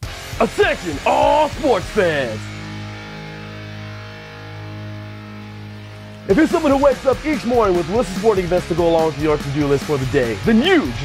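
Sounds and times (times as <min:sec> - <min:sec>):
sustained ringing chord: 0:00.1 - 0:08.0.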